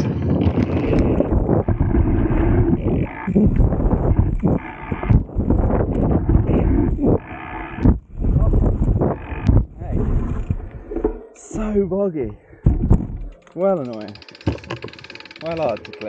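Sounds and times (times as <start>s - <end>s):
wind buffeting microphone: 0.0s - 13.3s
bike tyre and frame rumble: 0.0s - 16.0s
rider groaning: 0.1s - 13.4s.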